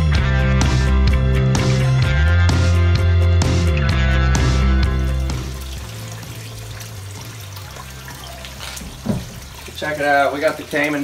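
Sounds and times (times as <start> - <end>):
music: 0.0 - 10.9
water splashing into pond: 4.8 - 11.0.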